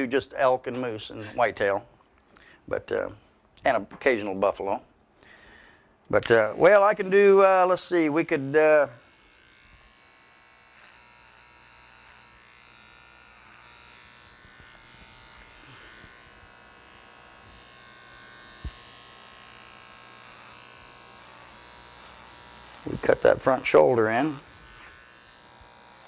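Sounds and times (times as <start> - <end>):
electric hair clippers buzzing: 6.3 - 26.0.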